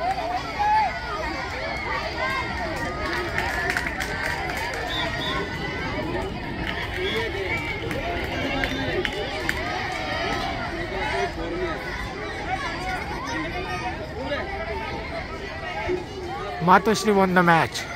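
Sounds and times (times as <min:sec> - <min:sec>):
crowd shouting: 0:00.0 - 0:17.9.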